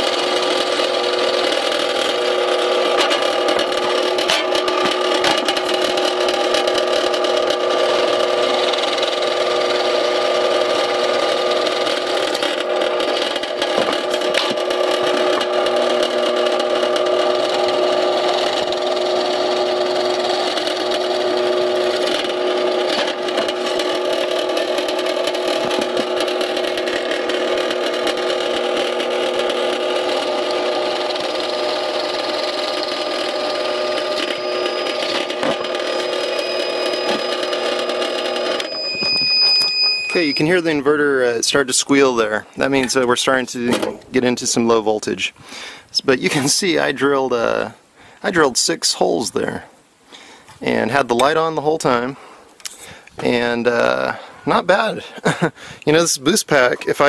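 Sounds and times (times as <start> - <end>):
drill press motor hum: 0.0 - 40.8
drill bit scraping through wood: 0.0 - 42.1.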